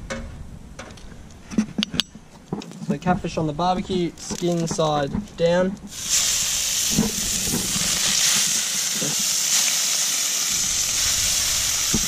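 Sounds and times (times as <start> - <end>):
fish sizzling on a hot plate: 5.9 - 12.0.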